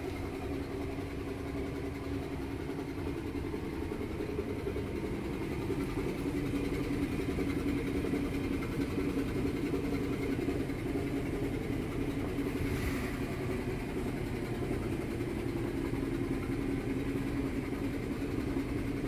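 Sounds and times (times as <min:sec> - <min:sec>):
low mechanical hum and rumble: 0:00.0 - 0:19.0.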